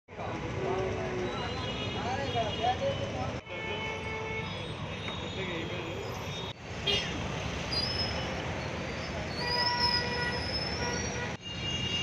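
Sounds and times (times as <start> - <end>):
vehicle engines running: 0.1 - 1.6.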